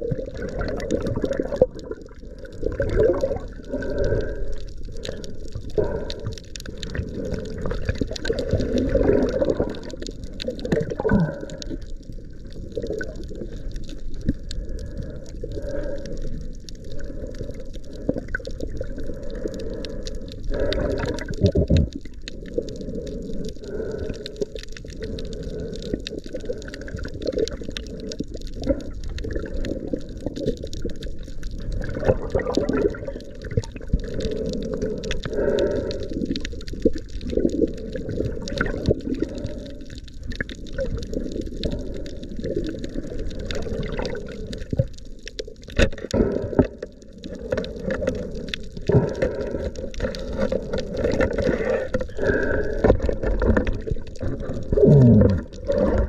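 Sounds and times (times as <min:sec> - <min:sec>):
small clicks and splashes: 0:00.0 - 0:56.0
water sloshing and gurgling: 0:00.0 - 0:56.0.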